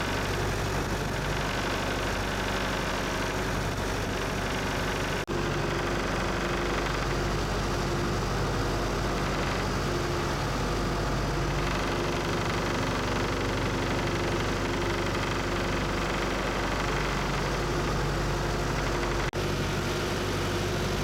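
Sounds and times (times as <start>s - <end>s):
boat engine hum: 0.0s - 21.0s
churning wake: 0.0s - 21.0s
wind: 0.0s - 21.0s.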